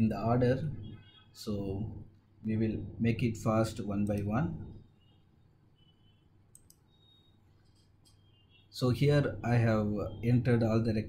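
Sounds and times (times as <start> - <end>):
computer mouse clicks: 6.5 - 8.3.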